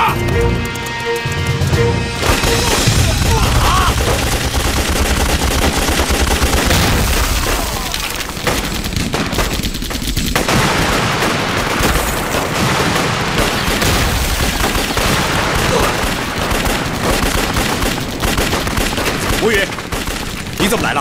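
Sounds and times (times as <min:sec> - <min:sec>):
rifle gunfire: 0:02.2 - 0:21.0.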